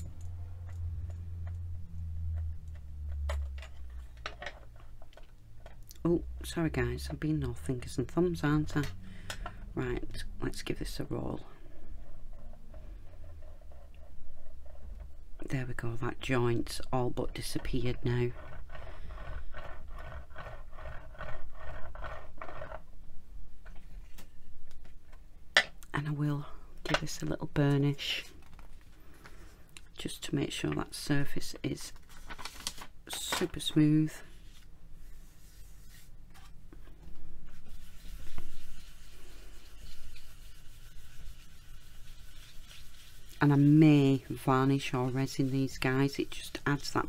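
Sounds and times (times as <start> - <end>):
roller rolling over clay: 12.1 - 22.9, 37.4 - 47.0
paper rubbing on paper: 17.6 - 22.8, 34.3 - 36.5, 37.4 - 47.0.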